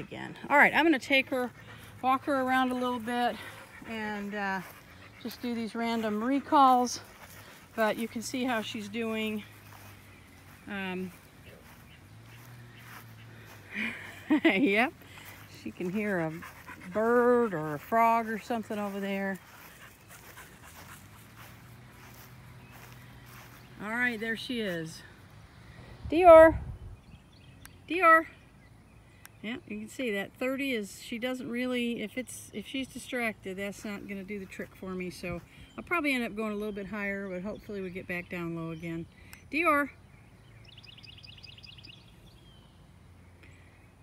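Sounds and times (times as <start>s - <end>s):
bird chirping: 0.0s - 24.8s, 33.3s - 43.9s
footsteps on grass: 0.0s - 25.6s
faint outdoor ambience: 0.0s - 44.0s
dog panting softly: 3.0s - 8.0s, 16.1s - 17.4s.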